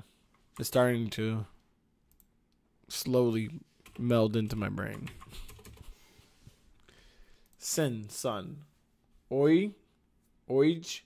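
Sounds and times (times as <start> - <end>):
faint typing on keyboard: 3.8 - 6.0.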